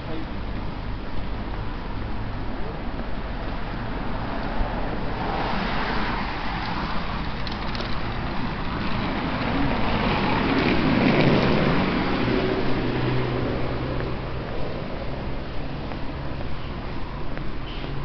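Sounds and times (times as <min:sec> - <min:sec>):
car passing by: 0:03.7 - 0:15.8.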